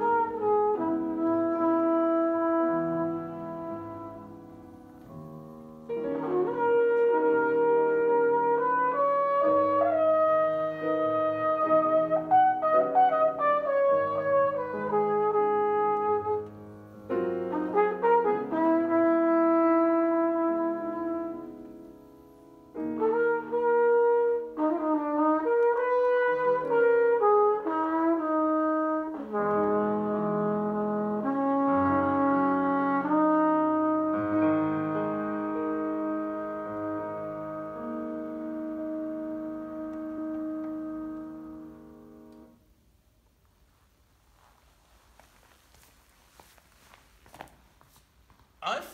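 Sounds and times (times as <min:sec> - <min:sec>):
flugelhorn jazz melody: 0:00.0 - 0:43.0
grand piano chords: 0:00.0 - 0:43.6.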